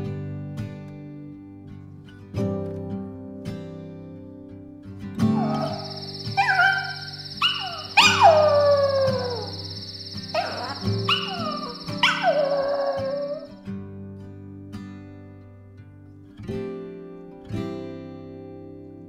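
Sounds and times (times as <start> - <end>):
soft acoustic guitar music: 0.0 - 19.0
small dog howling: 5.3 - 13.5
high steady ringing tone: 5.4 - 13.5.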